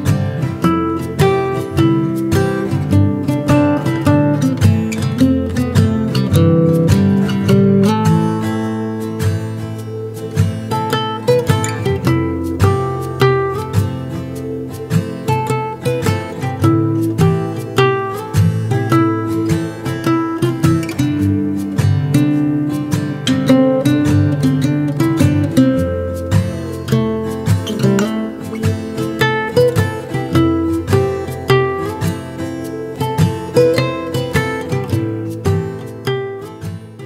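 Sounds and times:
acoustic guitar playing: 0.0s - 37.0s.

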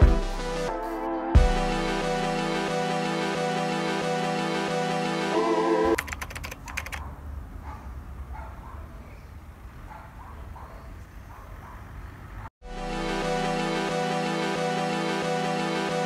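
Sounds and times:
background music: 0.0s - 6.0s, 12.6s - 16.0s
quick run of clicks: 6.0s - 7.1s.

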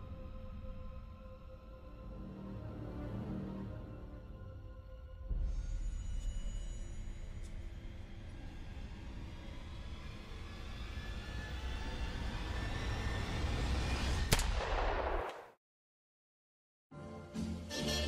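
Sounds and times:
eerie soundtrack drone: 0.0s - 14.2s
sharp gunshot bang: 14.3s - 15.6s.

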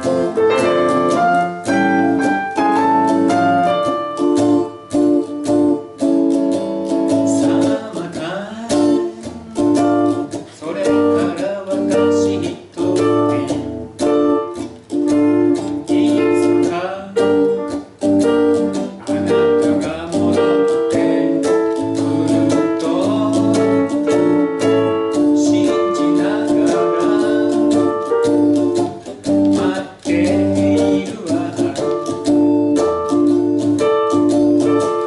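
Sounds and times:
person singing: 0.0s - 5.8s, 6.9s - 17.9s, 18.5s - 35.0s
electric guitar choppy chords: 0.0s - 35.0s
keyboard accompaniment: 0.0s - 35.0s.

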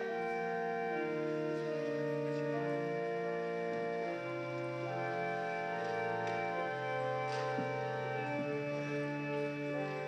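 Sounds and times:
church organ chords: 0.0s - 10.0s.

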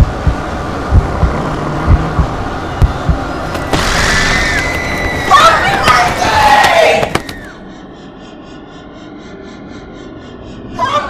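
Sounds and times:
pulsing drone: 0.0s - 11.0s.

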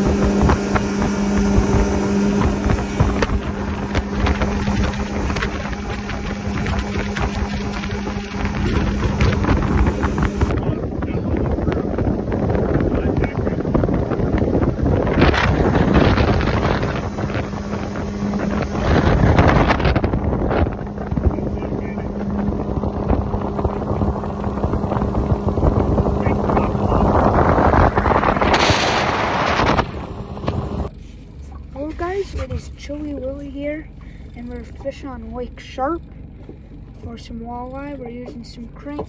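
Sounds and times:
wind buffeting microphone: 0.0s - 30.9s
outboard motor running: 0.0s - 39.0s.

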